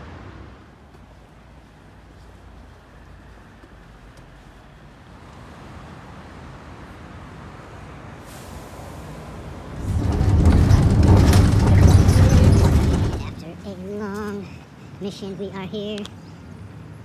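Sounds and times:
street traffic rumble: 0.0s - 17.0s
vehicles passing close by: 0.0s - 17.0s.

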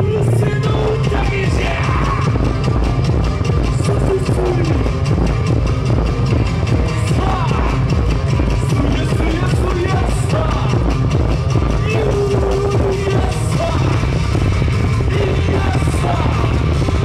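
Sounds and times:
loud dance music with heavy beat: 0.0s - 17.0s.

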